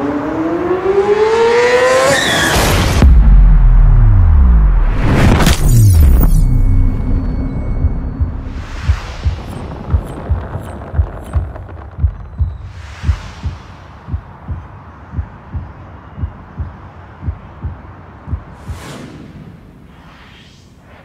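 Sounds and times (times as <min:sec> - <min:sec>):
whoosh: 0:02.7 - 0:14.5, 0:18.6 - 0:21.0
deep thumping beat: 0:07.1 - 0:18.9.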